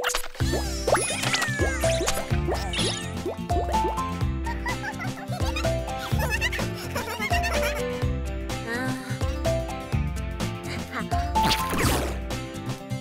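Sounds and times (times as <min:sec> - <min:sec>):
squeaky character voice sounds: 0:00.0 - 0:03.1
cartoon music with bass beat: 0:00.4 - 0:12.9.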